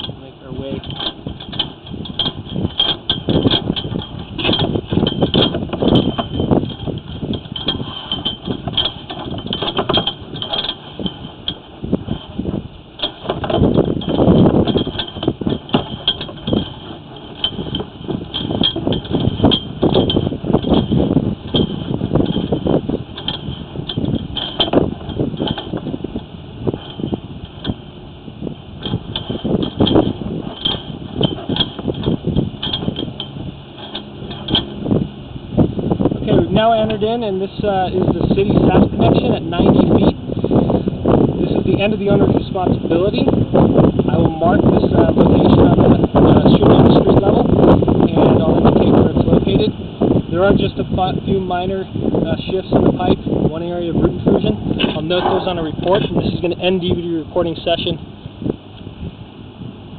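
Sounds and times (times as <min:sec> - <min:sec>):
cable reel rattling and clicking: 0:00.0 - 0:58.9.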